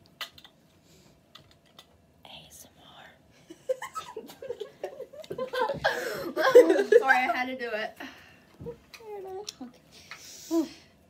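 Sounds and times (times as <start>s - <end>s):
soft breathy whisper: 2.2s - 3.3s
people laughing: 3.7s - 7.2s.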